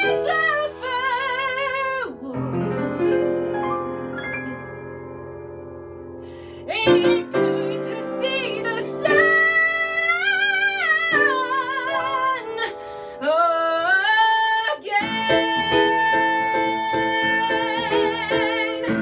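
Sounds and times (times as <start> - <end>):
woman singing with vibrato: 0.0 - 2.6, 6.7 - 19.0.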